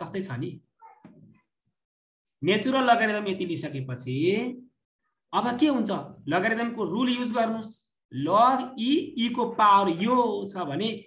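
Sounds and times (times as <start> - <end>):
man speaking: 2.4 - 11.0.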